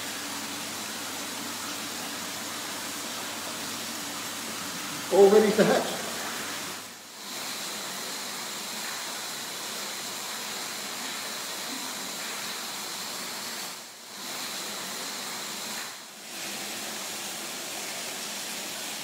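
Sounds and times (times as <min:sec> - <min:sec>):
water running hiss: 0:00.0 - 0:19.0.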